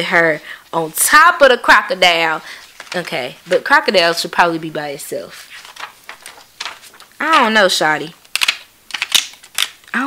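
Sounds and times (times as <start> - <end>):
paper and plastic rustling: 2.4 - 4.6, 5.3 - 7.5
ring binder clicks: 8.3 - 9.8.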